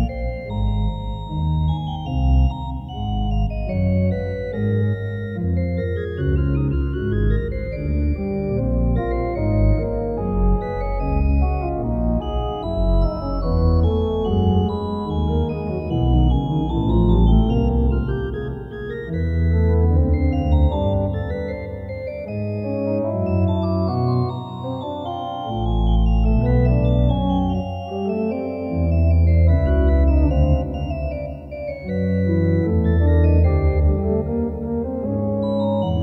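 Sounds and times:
organ playing a trio sonata: 0.0s - 36.0s.

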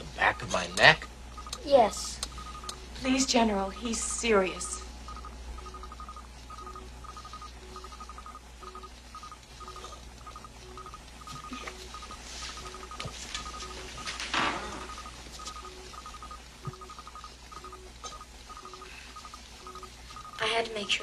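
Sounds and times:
electronic beeping pattern: 0.0s - 21.0s.

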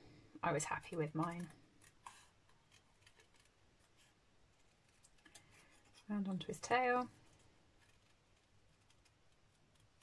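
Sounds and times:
faint scissors snipping paper: 0.9s - 6.2s, 6.9s - 10.0s.

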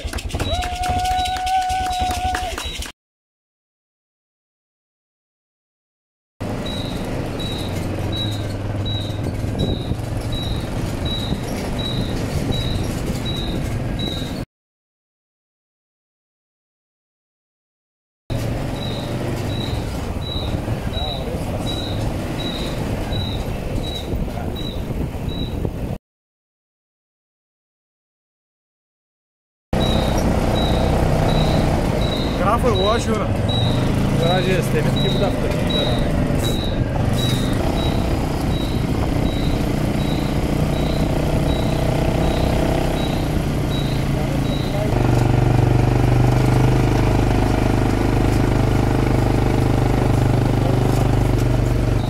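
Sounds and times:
bicycle squeaking: 0.0s - 2.9s, 6.4s - 14.4s, 18.3s - 25.7s, 29.8s - 52.0s
low rumble of riding: 0.0s - 2.9s, 6.4s - 14.4s, 18.3s - 26.0s, 29.8s - 52.0s
wind: 0.0s - 2.9s, 6.4s - 14.5s, 18.3s - 26.0s, 29.8s - 52.0s
faint high squeak: 6.7s - 14.4s, 18.8s - 25.6s, 35.7s - 38.0s.

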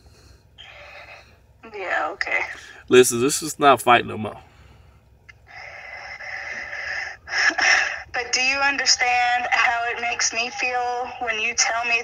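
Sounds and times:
breathy exhaling: 0.0s - 1.4s, 4.4s - 7.3s.

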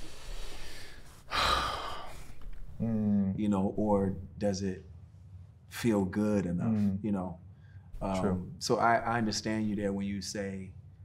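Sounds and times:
man sighing heavily: 1.3s - 2.4s
speech: 5.7s - 7.4s, 8.0s - 10.8s.

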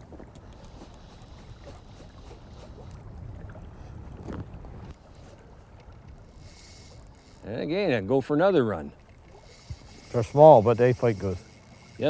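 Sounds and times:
wind rumbling on microphone: 0.0s - 6.5s
river water flowing: 0.0s - 12.0s.

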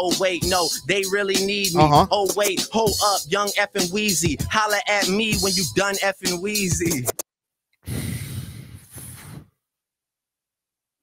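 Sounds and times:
rap music: 0.0s - 7.2s
person sighing into microphone: 7.8s - 9.5s.

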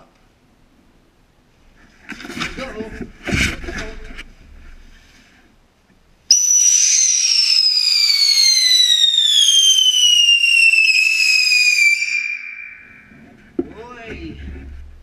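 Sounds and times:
whistling firework falling in pitch: 6.3s - 13.2s.

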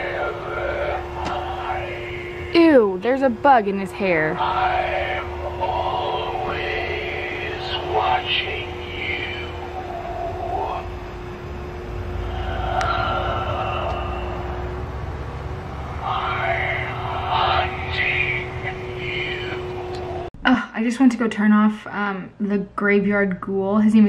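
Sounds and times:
steady electric hum: 0.0s - 24.0s.

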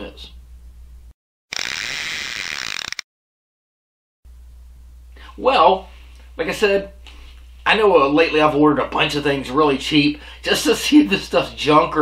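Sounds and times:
mechanical ratcheting clatter: 1.5s - 3.0s.

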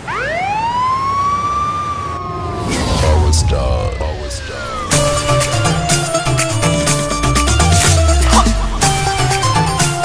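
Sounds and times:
siren-like rising tone: 0.0s - 10.0s.

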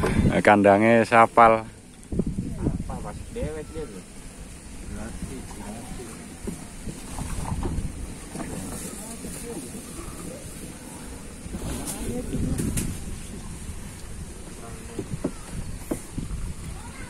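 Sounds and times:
boat engine rumble: 0.0s - 17.0s
faint muffled voices: 8.0s - 17.0s.

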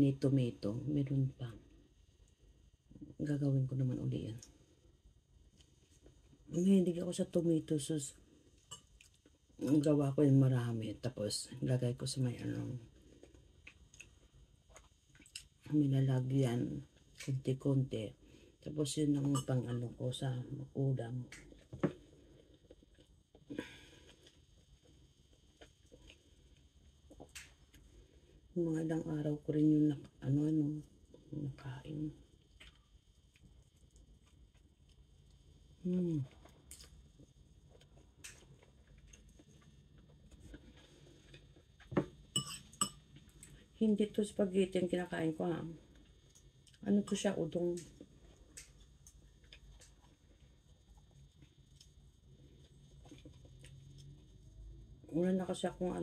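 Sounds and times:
metal fork clinking on tableware: 42.3s - 43.0s.

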